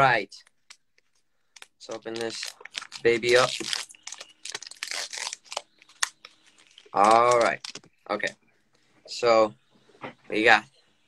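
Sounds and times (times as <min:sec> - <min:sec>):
foil wrapper crinkling: 0:00.6 - 0:08.3.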